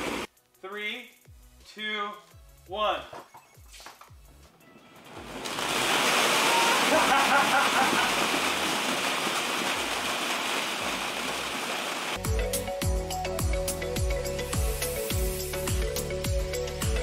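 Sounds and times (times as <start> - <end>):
plastic balls pouring onto floor: 5.0 - 12.2.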